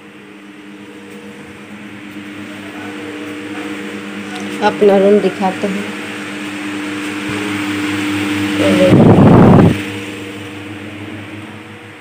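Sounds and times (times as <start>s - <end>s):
mechanical hum: 0.0s - 12.0s.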